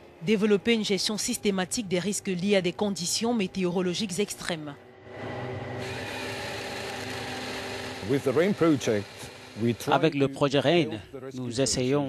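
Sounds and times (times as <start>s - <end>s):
forestry harvester engine humming: 4.8s - 11.0s.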